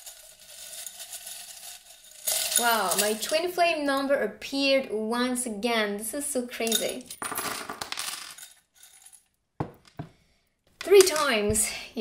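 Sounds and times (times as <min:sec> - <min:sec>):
metal charms clinking and skittering: 0:00.0 - 0:03.4.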